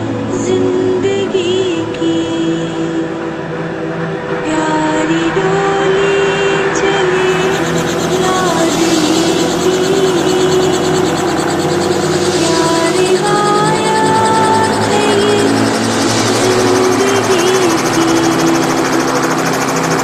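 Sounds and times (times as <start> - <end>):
background music: 0.0 - 20.0
helicopter rotor chopping: 5.6 - 20.0.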